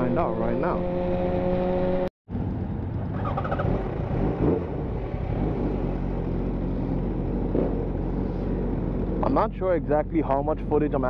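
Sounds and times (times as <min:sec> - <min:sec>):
wind and road noise: 0:00.0 - 0:11.0
motorcycle engine running: 0:00.9 - 0:11.0.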